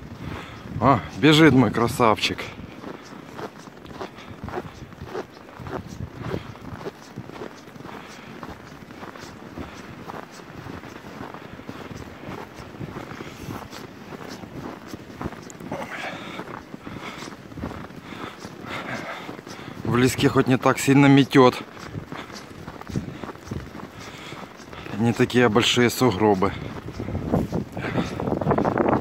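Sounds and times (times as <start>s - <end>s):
footsteps crunching in snow: 0.0s - 29.0s.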